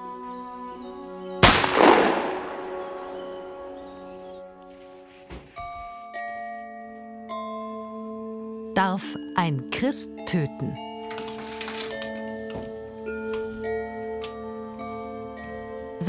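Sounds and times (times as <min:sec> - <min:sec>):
background music: 0:00.0 - 0:16.0
rifle shot with echo: 0:01.4 - 0:03.8.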